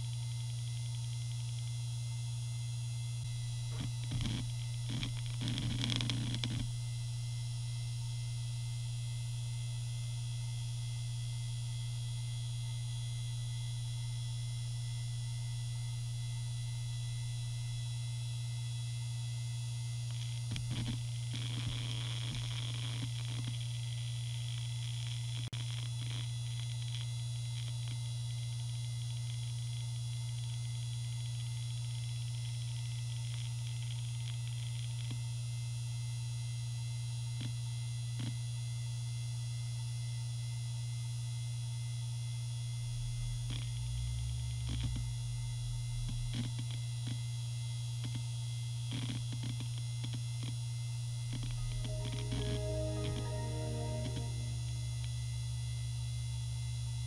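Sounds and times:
hard drive spinning with whine: 42.7 - 47.4, 51.1 - 53.2.

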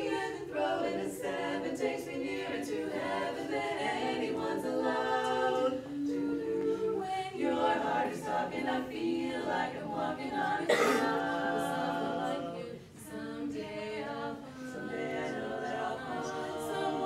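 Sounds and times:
women singing in harmony: 0.0 - 17.0.

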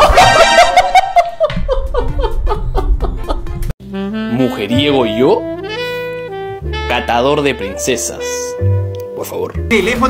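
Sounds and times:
person laughing: 0.0 - 3.6
background music: 1.8 - 10.0.

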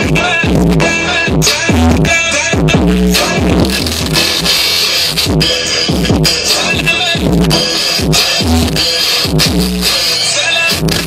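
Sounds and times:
drum beat from vinyl: 0.0 - 11.0
turntable scratches: 0.0 - 11.0.

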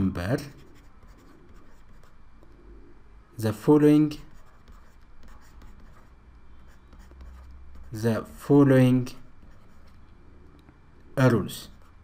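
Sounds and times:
low steady hum: 0.0 - 12.0
stylus scratching on tablet: 0.4 - 2.7, 4.1 - 8.4, 9.2 - 10.1, 11.5 - 12.0.

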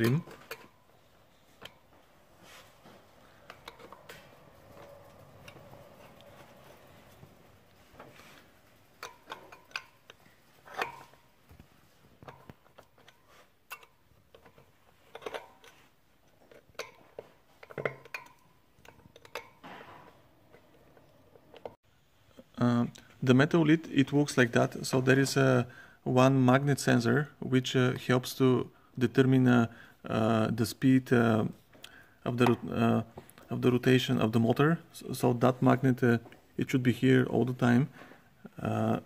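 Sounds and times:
light metallic clicks and taps: 8.8 - 19.6.

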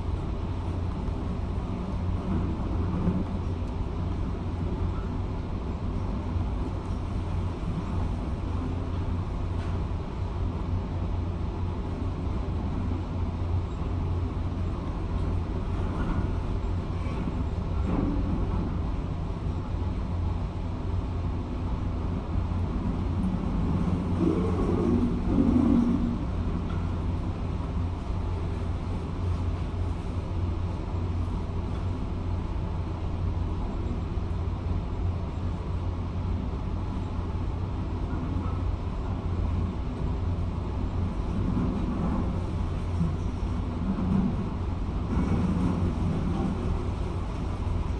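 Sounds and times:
excavator diesel engine rumble: 0.0 - 47.9.

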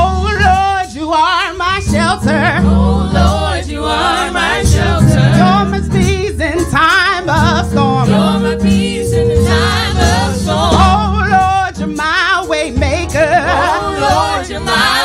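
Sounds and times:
low instrumental bass notes: 0.0 - 15.0
choir singing with vibrato: 2.2 - 6.0, 7.4 - 11.5, 13.4 - 15.0.

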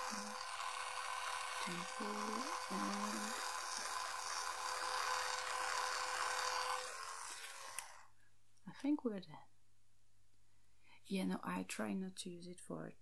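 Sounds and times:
electric cleansing brush buzzing: 0.0 - 8.1.

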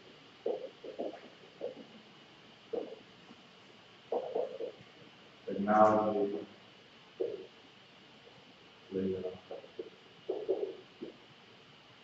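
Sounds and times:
muffled murmur: 5.5 - 6.6, 8.9 - 11.1.

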